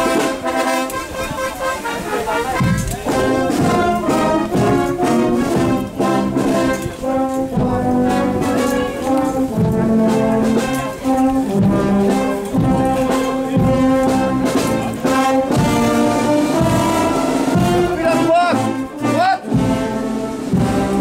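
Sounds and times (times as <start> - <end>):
brass band playing march: 0.0 - 21.0.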